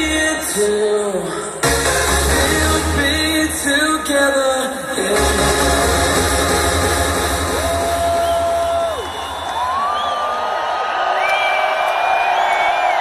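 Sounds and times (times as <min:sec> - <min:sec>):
electronic dance music: 0:00.0 - 0:09.8
crowd cheering and whooping: 0:07.2 - 0:13.0.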